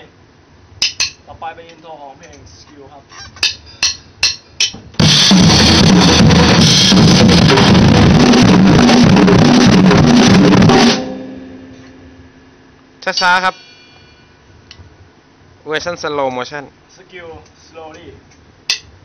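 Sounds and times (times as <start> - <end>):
drum kit playing: 3.4 - 13.7.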